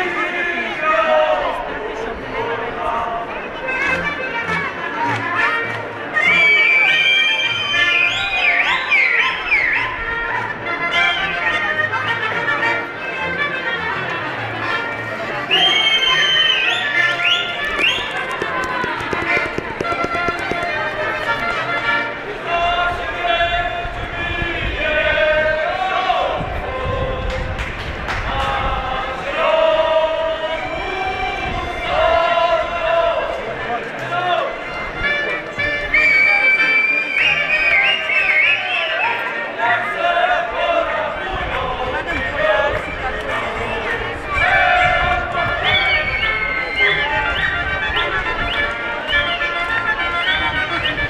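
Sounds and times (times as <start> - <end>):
crowd chatter: 0.0 - 51.0
folk band with accordion: 0.0 - 51.0
shoes tapping on pavement: 17.4 - 21.9.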